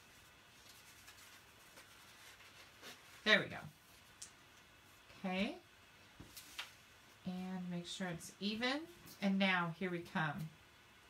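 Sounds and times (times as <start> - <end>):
card stock rustling: 0.0 - 3.2.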